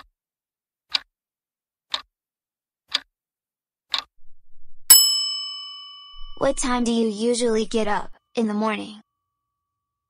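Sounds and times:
clock ticking: 2.9s - 3.1s, 3.9s - 5.0s
bright bell ding: 4.9s - 7.0s.

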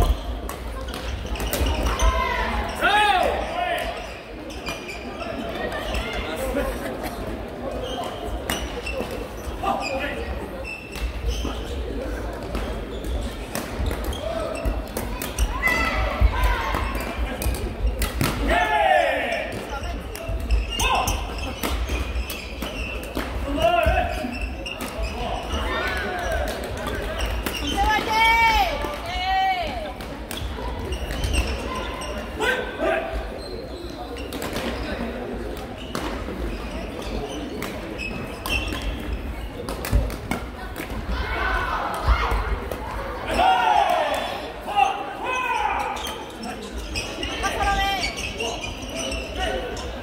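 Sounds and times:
shoe squeaks on wooden floor: 0.0s - 2.8s, 4.0s - 6.2s, 7.7s - 15.9s, 19.4s - 23.2s, 23.8s - 26.3s, 27.0s - 28.1s, 33.3s - 35.0s, 35.6s - 39.6s, 45.6s - 50.0s
voices in echoing hall: 0.0s - 50.0s.

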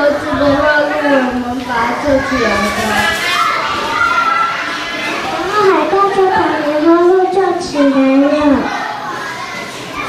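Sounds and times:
young children talking over each other: 0.0s - 10.0s.

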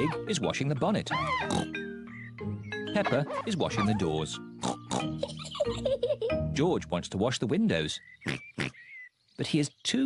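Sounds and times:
gentle children's music: 0.0s - 8.0s
cartoon pig oink: 1.1s - 1.8s, 3.0s - 5.2s.

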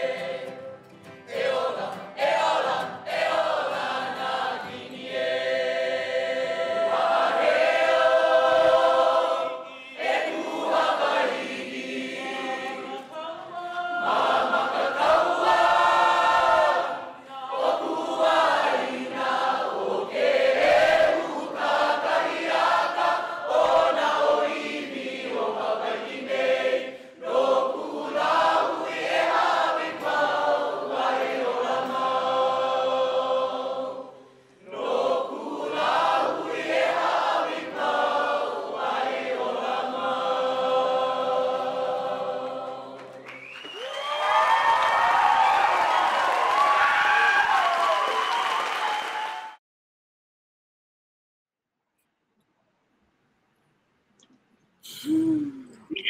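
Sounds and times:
choir singing: 0.0s - 43.5s.

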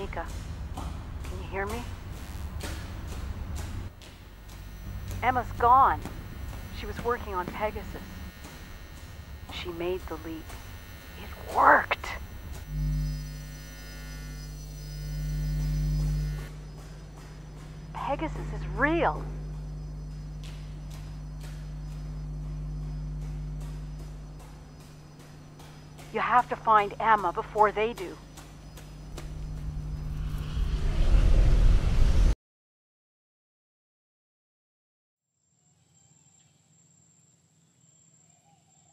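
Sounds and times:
low electrical hum: 0.0s - 30.2s.

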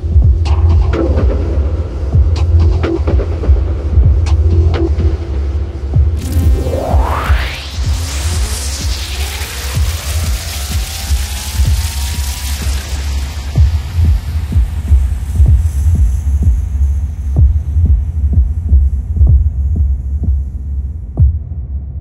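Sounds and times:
ambient electronic music: 0.0s - 22.0s
high hiss: 6.2s - 18.2s.

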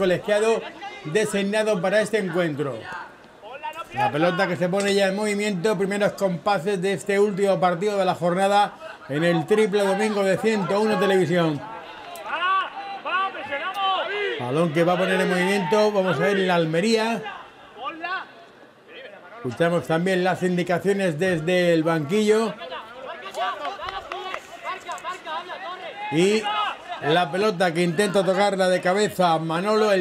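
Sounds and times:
people shouting and calling: 0.0s - 6.1s, 7.1s - 19.2s, 21.0s - 30.0s.

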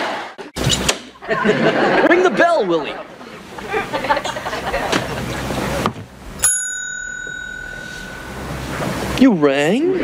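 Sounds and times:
desk service bell ding: 6.4s - 8.9s.

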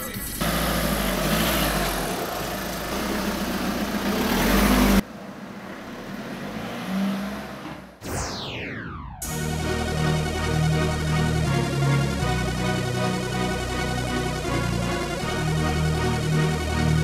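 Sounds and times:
car engine accelerating: 0.4s - 8.4s.

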